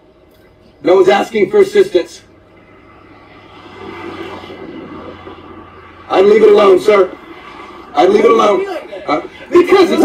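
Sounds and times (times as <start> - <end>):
steady low hum: 0.0 - 10.0
passing vehicle engine drone: 2.3 - 9.4.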